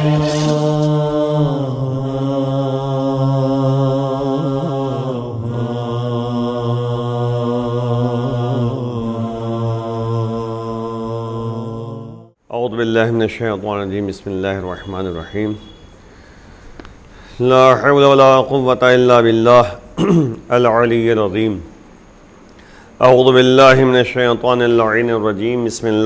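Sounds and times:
man chanting low held notes: 0:00.0 - 0:15.8, 0:17.4 - 0:19.9.

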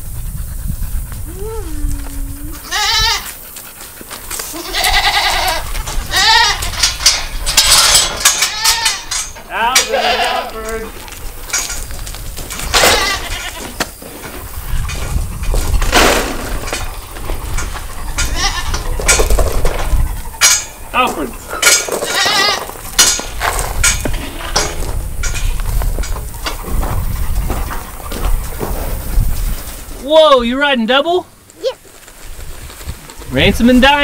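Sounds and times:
goats bleating: 0:02.5 - 0:03.3, 0:04.4 - 0:06.8, 0:08.5 - 0:10.7, 0:12.9 - 0:13.8, 0:18.2 - 0:18.8, 0:22.0 - 0:22.8.

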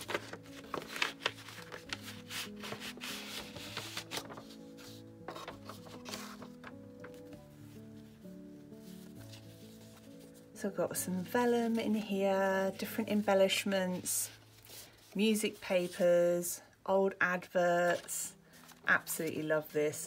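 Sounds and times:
paper rustling and sliding: 0:00.0 - 0:08.2, 0:08.8 - 0:10.4, 0:13.9 - 0:16.0, 0:17.9 - 0:19.2
soft background music: 0:00.0 - 0:20.0.

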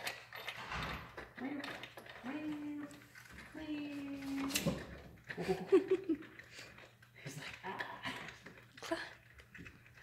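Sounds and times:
small irregular clicks: 0:00.0 - 0:10.0.

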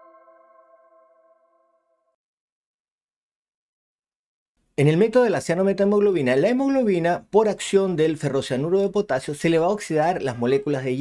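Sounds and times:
bell-like chime ringing: 0:00.0 - 0:02.1.

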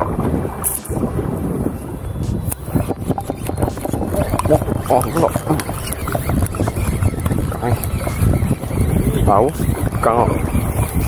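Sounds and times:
wind rumble on microphone: 0:00.0 - 0:11.0
voices talking: 0:02.3 - 0:11.0.

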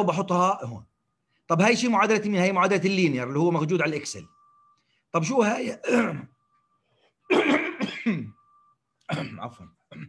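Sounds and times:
man coughing: 0:05.6 - 0:06.4, 0:07.3 - 0:08.4, 0:09.0 - 0:10.0
man clearing his throat: 0:05.7 - 0:06.4, 0:07.3 - 0:08.4, 0:09.0 - 0:10.0.

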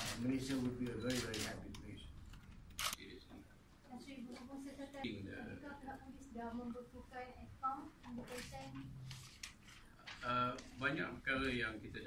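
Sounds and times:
camera shutter click: 0:02.8 - 0:03.0.

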